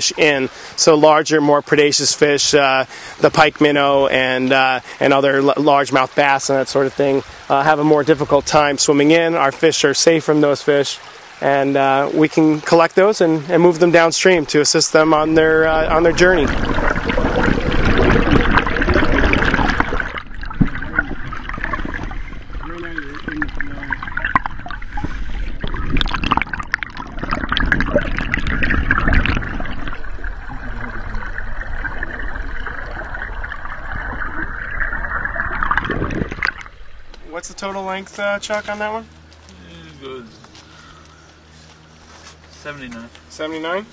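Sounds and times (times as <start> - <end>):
river water rushing underwater: 4.0 - 37.5
dip net splashing water: 16.0 - 37.2.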